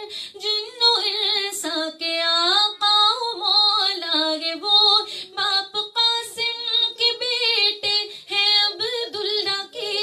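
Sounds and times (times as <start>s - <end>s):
woman singing devotional song: 0.0s - 10.0s.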